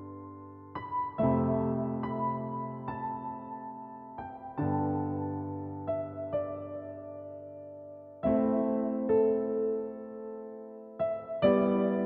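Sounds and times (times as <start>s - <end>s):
slow solo piano music: 0.0s - 12.0s.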